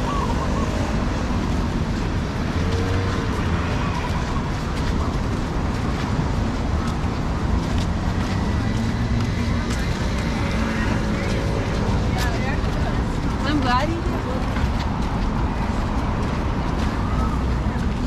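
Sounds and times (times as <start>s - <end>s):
passersby voices: 0.0s - 18.0s
road traffic rumble: 0.0s - 18.0s.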